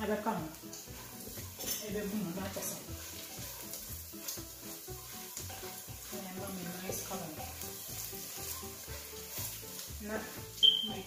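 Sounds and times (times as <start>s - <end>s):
food sizzling in butter: 0.0s - 11.0s
spoon stirring in pot: 0.5s - 10.8s.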